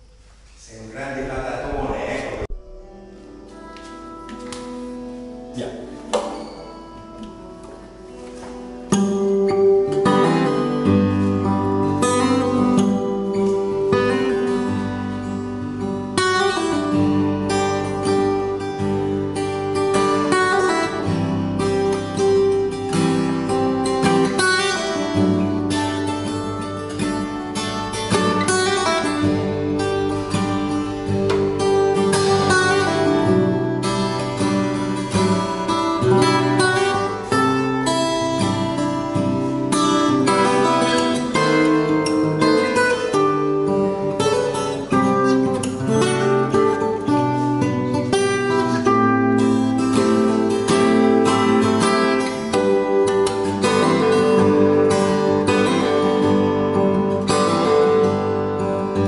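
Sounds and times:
fingerstyle acoustic guitar: 0:02.4 - 0:59.0.

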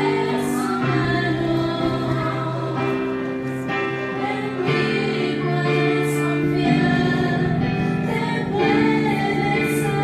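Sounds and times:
women singing a hymn: 0:00.0 - 0:10.0.

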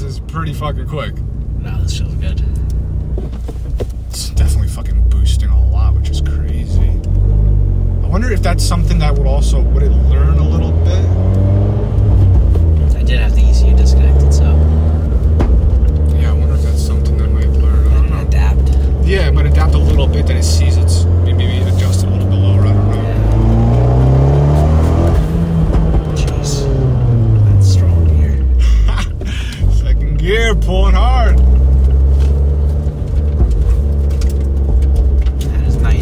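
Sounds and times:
car engine accelerating hard: 0:04.1 - 0:36.0.

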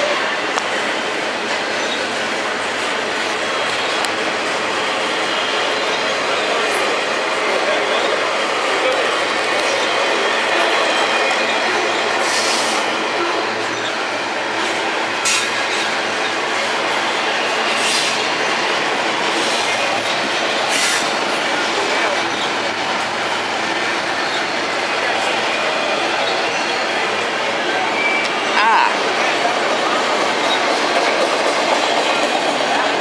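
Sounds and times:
freight train wheels rumbling: 0:00.0 - 0:33.0.

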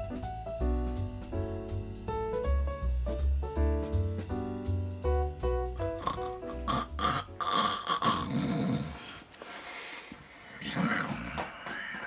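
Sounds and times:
piano music: 0:00.0 - 0:08.4
man snoring: 0:06.0 - 0:09.2.

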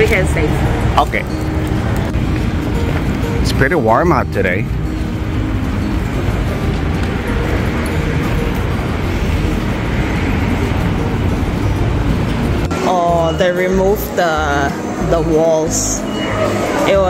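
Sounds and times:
passers-by: 0:00.0 - 0:17.0
road traffic: 0:00.0 - 0:17.0.

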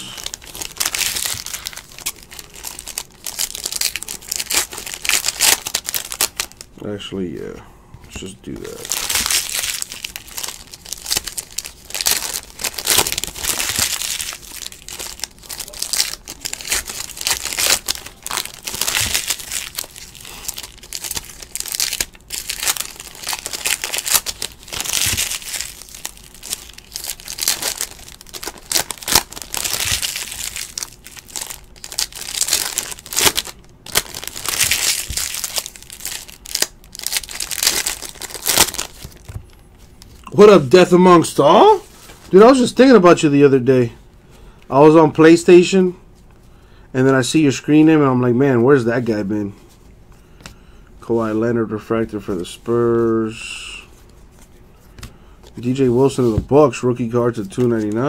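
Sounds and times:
foil wrappers crinkling and tearing: 0:00.0 - 0:06.7, 0:08.6 - 0:40.5.

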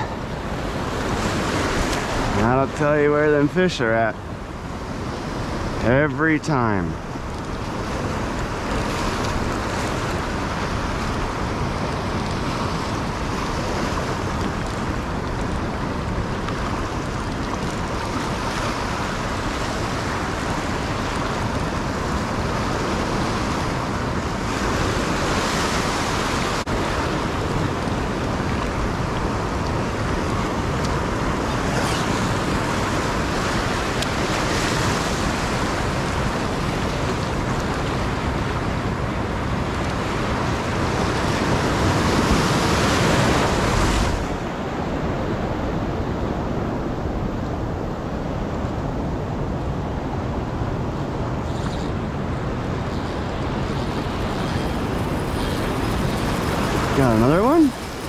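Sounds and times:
ocean surf breaking: 0:00.0 - 0:58.0.

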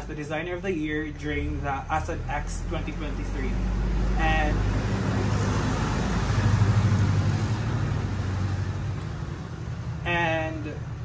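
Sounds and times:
vehicle engine rumble passing: 0:00.0 - 0:11.0.

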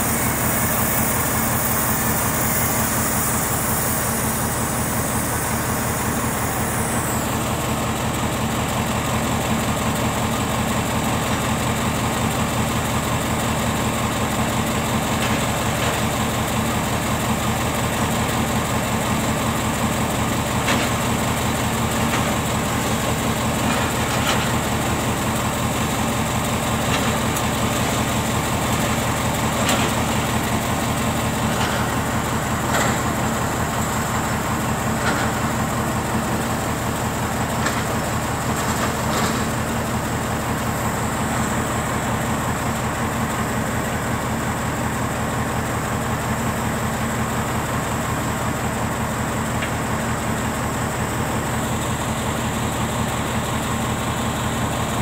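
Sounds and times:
heavy diesel machinery droning: 0:00.0 - 0:55.0.

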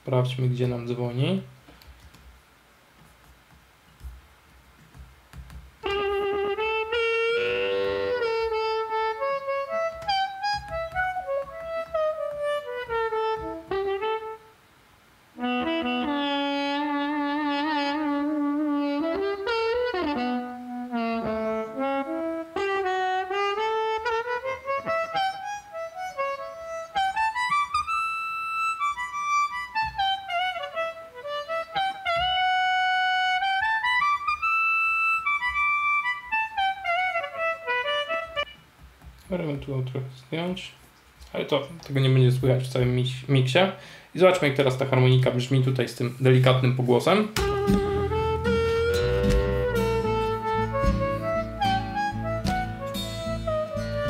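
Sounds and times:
harmonica bent sliding notes: 0:05.8 - 0:14.4, 0:15.4 - 0:38.6, 0:47.4 - 0:54.0.

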